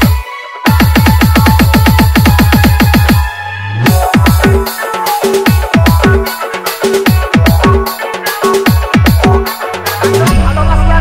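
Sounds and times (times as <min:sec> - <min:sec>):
electronic bass drums: 0:00.0 - 0:10.6.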